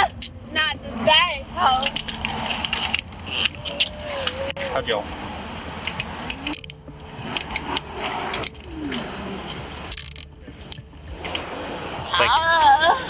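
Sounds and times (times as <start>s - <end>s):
metal handcuffs clicking: 5.8s - 11.4s.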